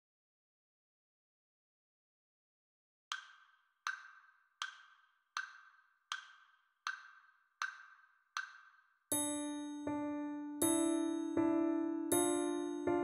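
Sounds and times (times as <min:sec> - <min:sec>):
metronome wood-block clicks: 0:03.1 - 0:10.0.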